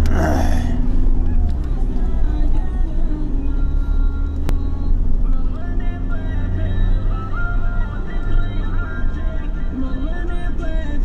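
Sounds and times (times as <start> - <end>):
tyres on dirt track: 0.0 - 9.6
vehicle engine rumble: 0.0 - 11.0.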